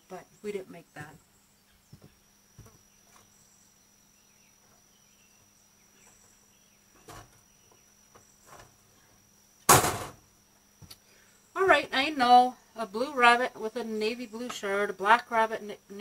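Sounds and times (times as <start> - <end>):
knocks and rustles of handling: 6.9 - 10.2
loud sharp clatter: 9.7 - 10.2.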